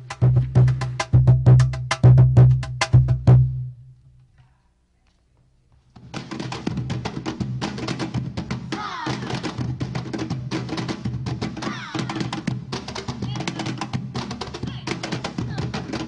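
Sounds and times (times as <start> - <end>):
upbeat theme music with percussion: 0.0 - 3.7, 6.0 - 16.0.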